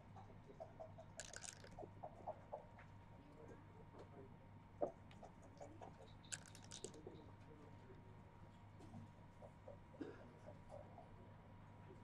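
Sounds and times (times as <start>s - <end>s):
backgammon checkers and dice clicking: 1.2s - 1.8s, 6.2s - 7.0s.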